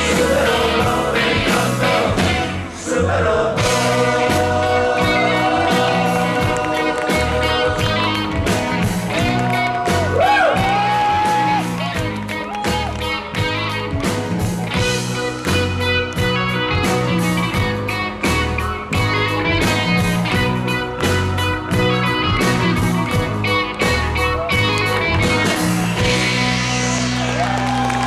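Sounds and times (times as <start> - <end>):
rock band playing live: 0.0 - 28.0.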